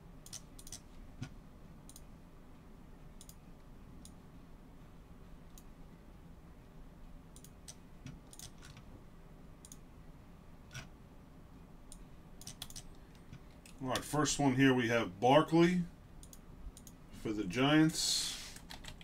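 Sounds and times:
mouse and keyboard clicks: 0:00.2 - 0:02.0, 0:07.4 - 0:08.8, 0:11.9 - 0:13.3.

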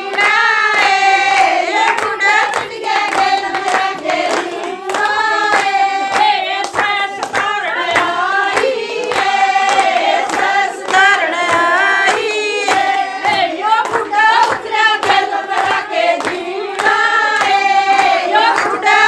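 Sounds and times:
rhythmic hand-clapping: 0:00.0 - 0:19.0
women singing folk song: 0:00.0 - 0:19.0.

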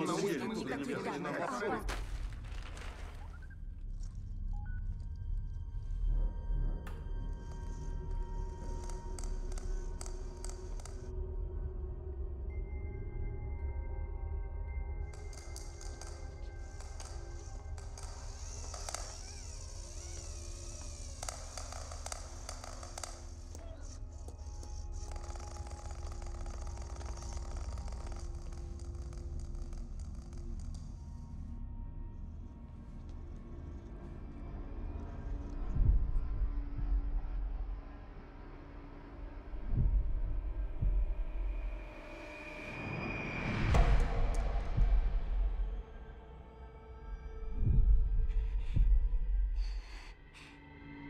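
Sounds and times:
quiet background music: 0:00.0 - 0:51.0
deep rumble: 0:01.8 - 0:42.1, 0:43.5 - 0:46.4, 0:47.1 - 0:50.2
faint clicks: 0:15.1 - 0:31.3
low rumble: 0:34.6 - 0:42.1, 0:43.4 - 0:46.4.

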